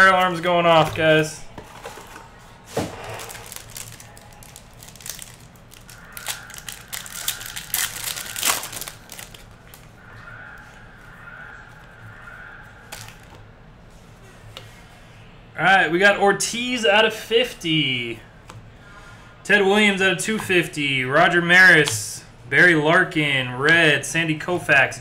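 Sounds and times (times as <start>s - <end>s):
foil wrapper crinkling and tearing: 3.0s - 9.9s.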